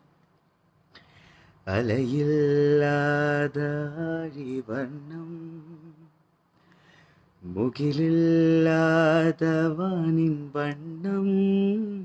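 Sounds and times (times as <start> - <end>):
singer breathing: 0.9 - 1.6, 6.5 - 7.4
man singing unaccompanied: 1.6 - 6.2, 7.4 - 12.0.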